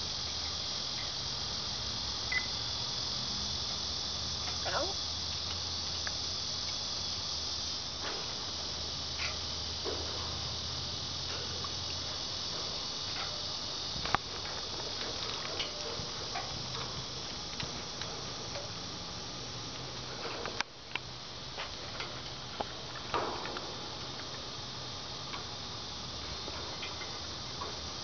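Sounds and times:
high-pitched hiss: 0.0s - 28.0s.

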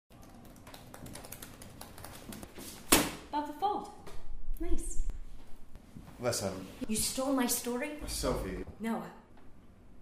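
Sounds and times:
laptop keyboard typing: 0.1s - 2.5s.

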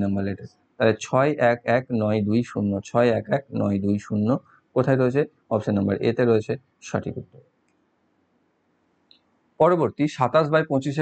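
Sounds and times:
man's voice: 0.0s - 7.4s, 9.6s - 11.0s.

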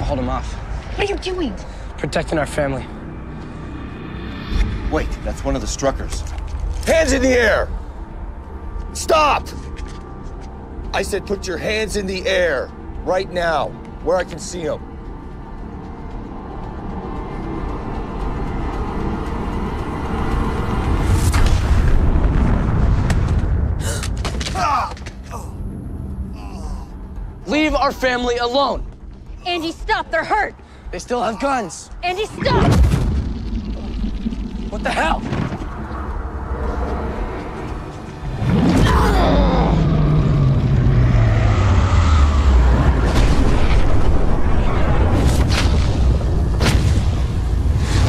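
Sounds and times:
low rumble: 31.9s - 48.0s
boom: 32.4s - 35.8s, 42.9s - 48.0s
loud deep drone: 32.7s - 46.4s
person shouting: 38.8s - 39.9s.

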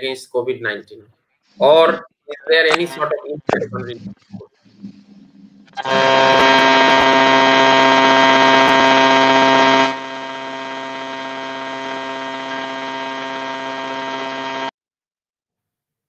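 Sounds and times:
loud electronic buzz: 3.0s - 14.7s.

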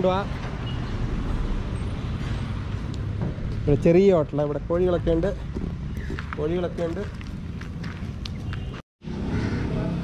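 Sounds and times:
road traffic engine hum: 0.0s - 10.0s.

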